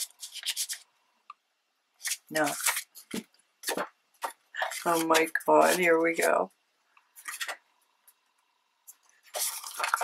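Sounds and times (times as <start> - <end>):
paper rustling: 0.0 - 0.9, 2.0 - 6.4, 7.2 - 7.6, 8.9 - 10.0.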